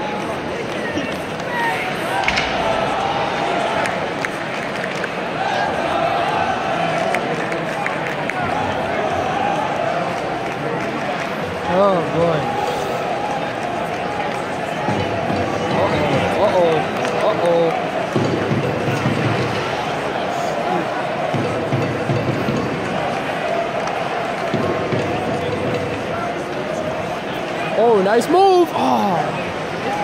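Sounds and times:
large crowd murmur: 0.0s - 30.0s
spectators chatting: 0.0s - 30.0s.

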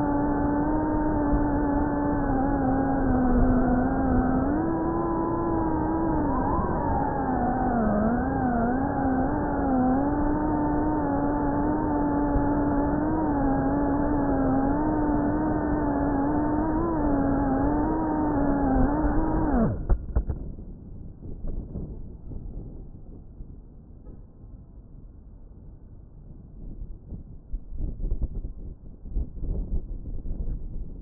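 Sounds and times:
drone motors whining: 0.0s - 20.0s.

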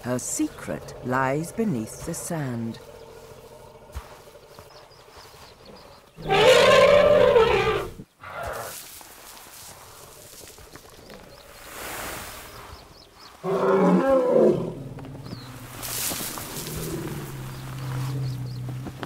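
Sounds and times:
elephant roaring: 5.6s - 8.7s, 13.4s - 18.6s.

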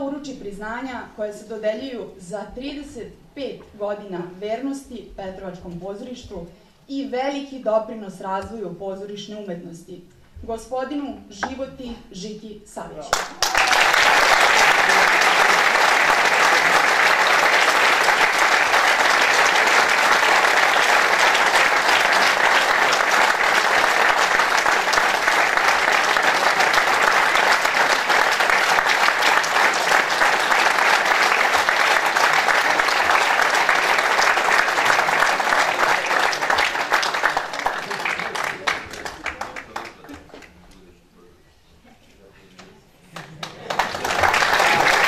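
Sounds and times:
audience applauding: 13.1s - 40.6s, 43.2s - 45.0s.

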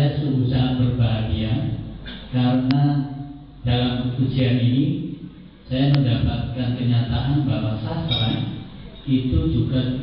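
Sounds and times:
man speaking: 5.7s - 10.0s.

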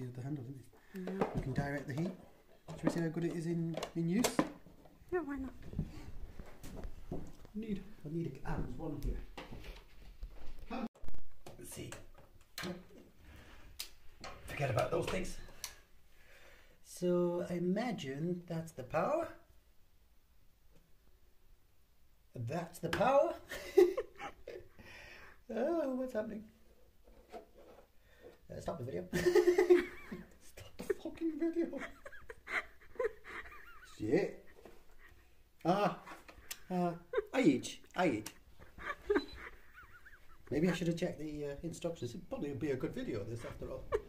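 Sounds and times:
man laughing in high squeaks: 38.6s - 40.5s.

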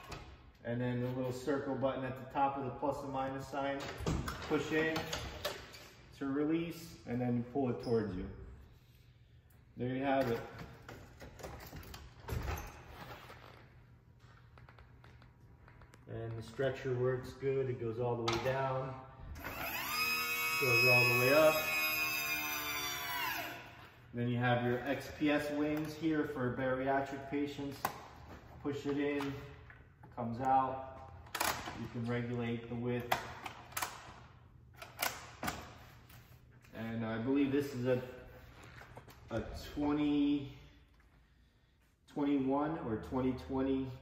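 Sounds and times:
hydraulic cot motor running: 19.4s - 23.6s.

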